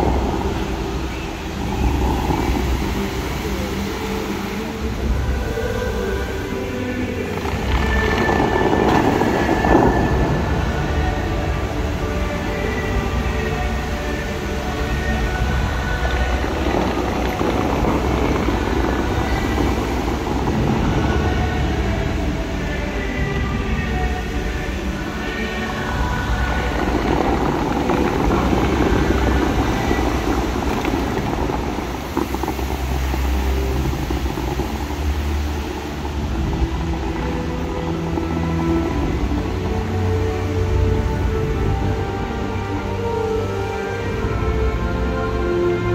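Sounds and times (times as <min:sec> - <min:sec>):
fountain water jets hissing: 0:00.0 - 0:45.9
music over outdoor loudspeakers: 0:00.0 - 0:45.9.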